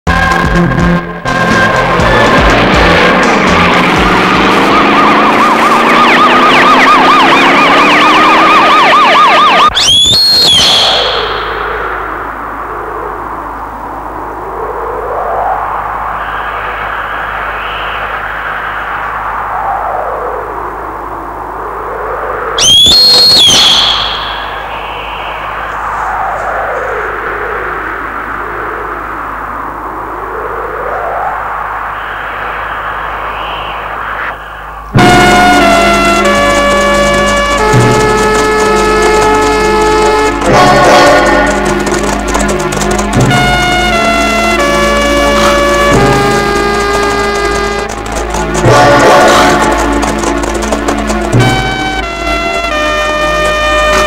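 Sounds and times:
film music: 0.1 - 12.7, 22.6 - 28.5, 30.6 - 54.0
siren wailing: 0.1 - 54.0.

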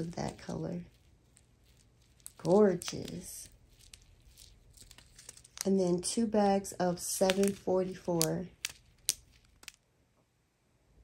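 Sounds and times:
plastic bags clicking: 1.4 - 5.7, 7.2 - 9.8.

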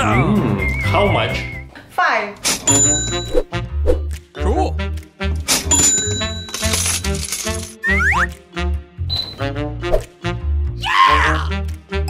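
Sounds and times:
coins jingling: 5.6 - 7.8
cash register beep: 9.1 - 9.4.

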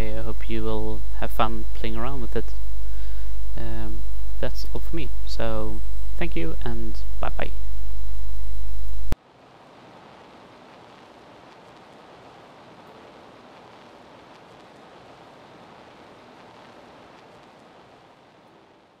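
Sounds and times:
faint steady hiss: 0.0 - 19.0.

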